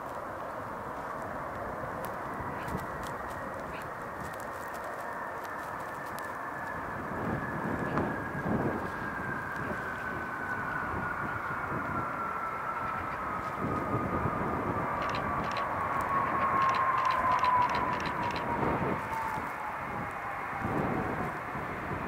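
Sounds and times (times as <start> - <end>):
low jet rumble: 0.0 - 22.0
wind buffeting microphone: 0.0 - 22.0
jet engines whining: 0.2 - 22.0.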